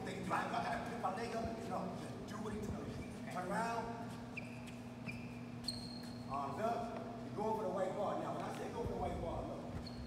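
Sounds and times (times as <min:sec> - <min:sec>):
steady low hum: 0:00.0 - 0:10.0
sneakers squeaking on gym floor: 0:04.0 - 0:06.6, 0:09.7 - 0:10.0.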